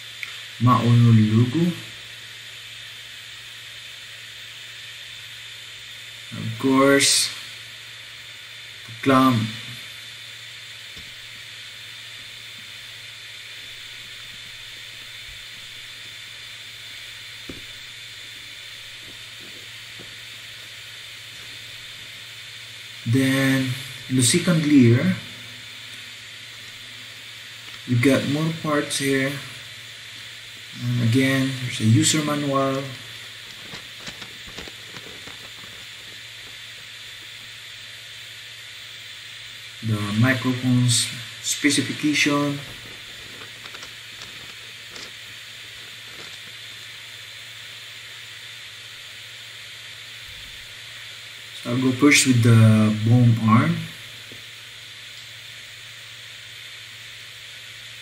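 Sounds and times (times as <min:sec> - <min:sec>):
background hiss: 0:00.0 - 0:58.0
faint high whine: 0:00.0 - 0:58.0
paper unfolding crackles: 0:33.4 - 0:36.5, 0:42.7 - 0:46.5.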